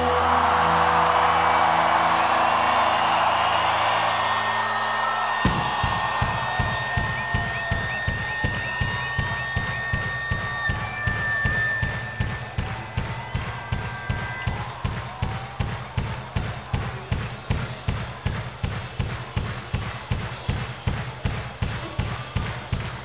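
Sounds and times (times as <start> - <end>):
crowd cheering: 0.0 - 23.0.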